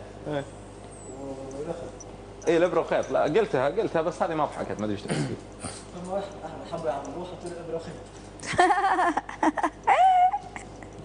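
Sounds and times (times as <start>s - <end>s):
high-pitched human vocal cry: 9.5s - 10.9s.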